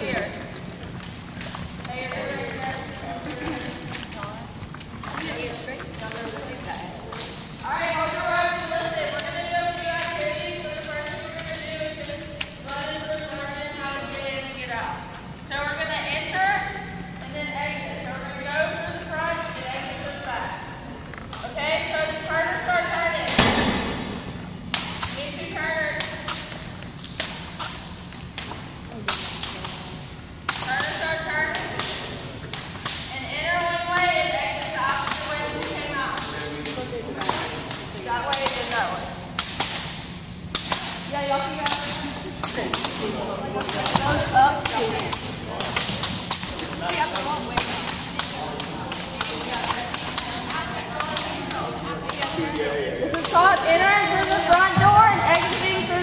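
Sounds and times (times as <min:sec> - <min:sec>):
jump ropes slapping gym floor: 0:21.3 - 0:56.0.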